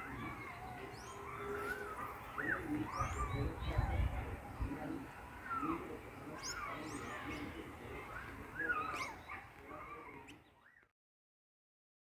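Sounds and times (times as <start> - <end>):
faint outdoor background noise: 0.0 - 10.9.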